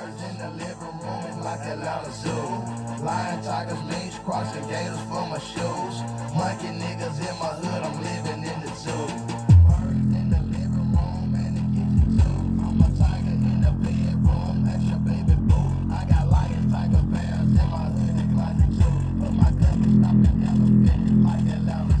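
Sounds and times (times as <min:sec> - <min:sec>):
bass-heavy music from speaker: 0:00.0 - 0:22.0.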